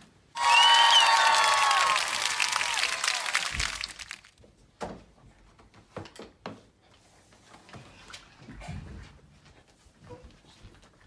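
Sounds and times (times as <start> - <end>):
crowd applauding and cheering: 0.4 - 4.3.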